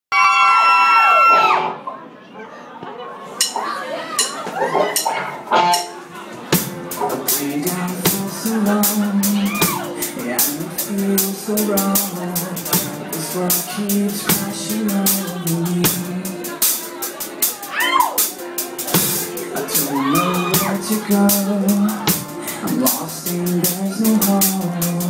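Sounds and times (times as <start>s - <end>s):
live rock band playing: 3.3s - 25.0s
loud cymbal and drum hits: 6.6s - 25.0s
person singing: 6.8s - 16.8s, 19.3s - 25.0s.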